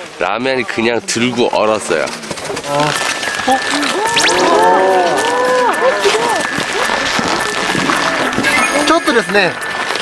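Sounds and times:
steady high tone: 0:02.9 - 0:10.0
crowd exclaiming: 0:03.8 - 0:07.0.

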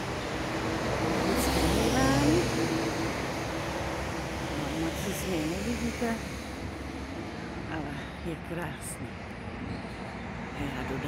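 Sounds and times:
car passing: 0:00.0 - 0:11.0.

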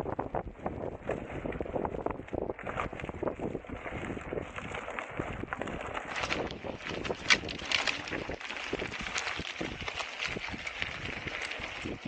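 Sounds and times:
knocks and crackles on rough trail: 0:00.0 - 0:12.0
wind buffeting microphone: 0:00.0 - 0:12.0.

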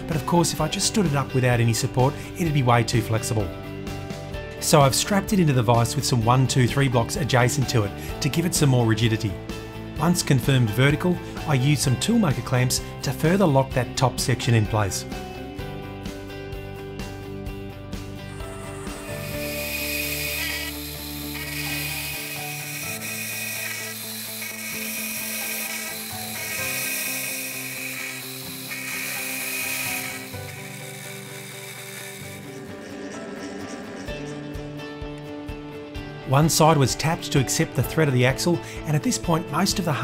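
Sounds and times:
milling machine cutting steel: 0:18.2 - 0:33.8.

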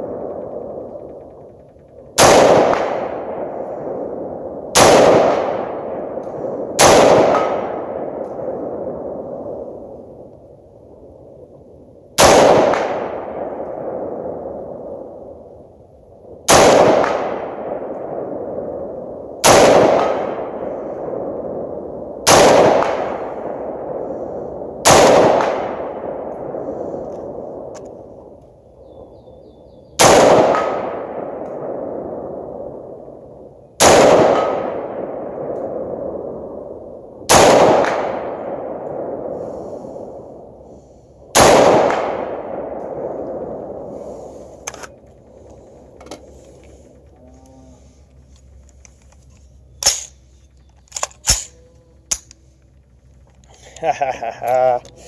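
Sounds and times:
rifle shots with echo: 0:00.0 - 0:28.4, 0:29.9 - 0:47.2, 0:47.8 - 0:53.5.

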